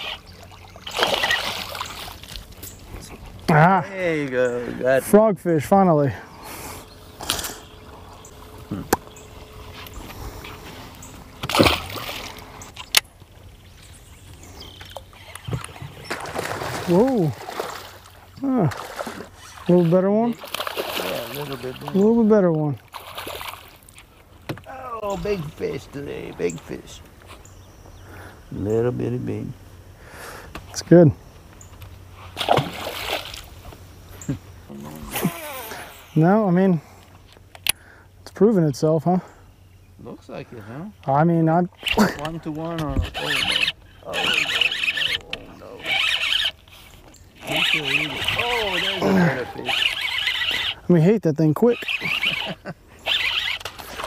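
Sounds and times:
fish splashing into water: 0:00.0 - 0:02.4, 0:11.4 - 0:12.4, 0:15.4 - 0:19.7, 0:20.4 - 0:21.9, 0:22.9 - 0:24.0, 0:32.4 - 0:33.5.

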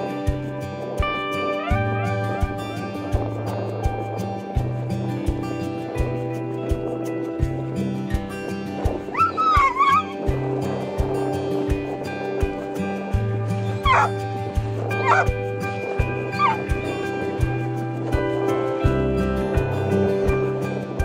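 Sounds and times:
background music with steady beat: 0:00.0 - 0:21.0
dog whining: 0:09.1 - 0:10.2, 0:13.8 - 0:14.1, 0:15.0 - 0:15.3, 0:16.4 - 0:16.7.

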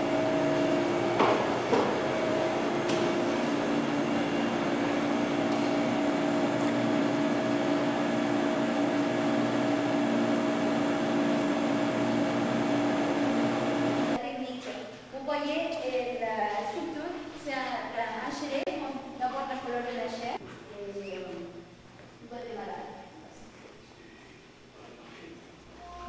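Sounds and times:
steady droning hum with hiss: 0:00.0 - 0:09.8, 0:14.0 - 0:26.0.

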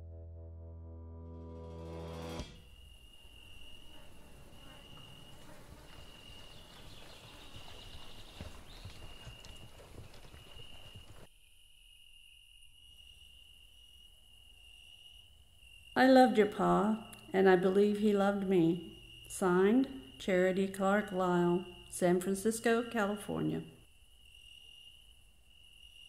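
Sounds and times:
high-pitched insect drone: 0:02.6 - 0:06.6
horse hoofbeats on grass: 0:04.2 - 0:11.3.

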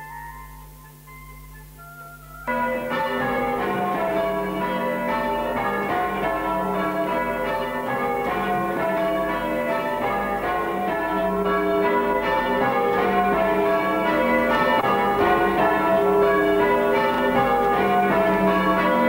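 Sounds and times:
church bells ringing: 0:02.4 - 0:19.0.

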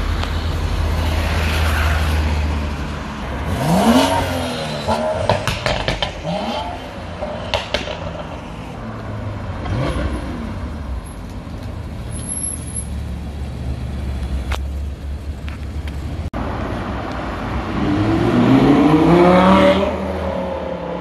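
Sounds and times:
car engines passing: 0:00.0 - 0:21.0.

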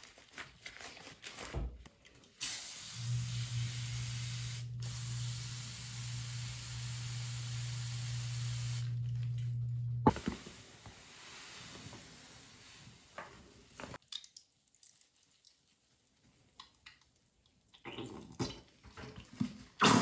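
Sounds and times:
spray hissing: 0:02.4 - 0:09.0
low hum: 0:03.0 - 0:10.4.

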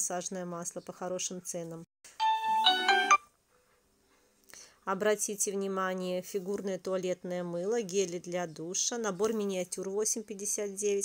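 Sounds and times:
smartphone ringtone melody: 0:02.2 - 0:03.3.

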